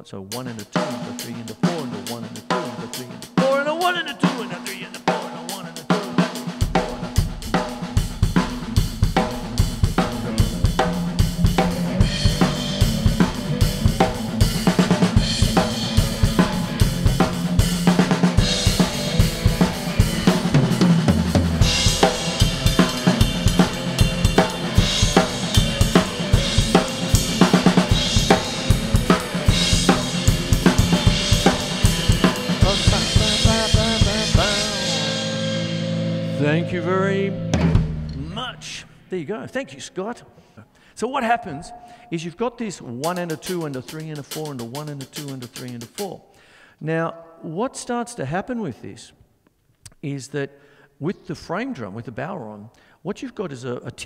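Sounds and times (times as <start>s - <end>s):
drum kit playing shuffle: 0.3s - 39.1s, 41.1s - 46.2s
electric guitar: 4.2s - 38.4s.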